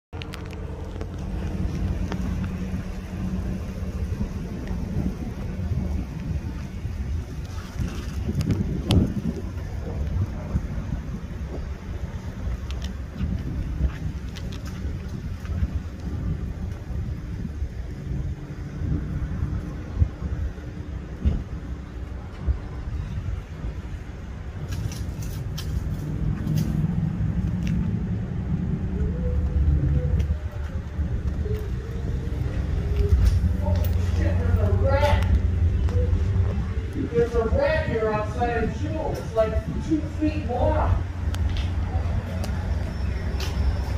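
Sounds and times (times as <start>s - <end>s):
low urban rumble: 0.1s - 43.9s.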